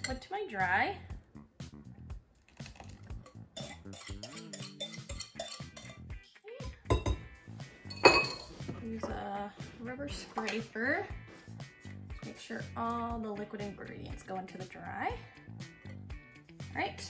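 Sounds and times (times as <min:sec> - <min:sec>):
batter being poured: 0:02.4 - 0:03.1
metal whisk clinking on glass bowl: 0:02.8 - 0:06.0, 0:07.9 - 0:08.5.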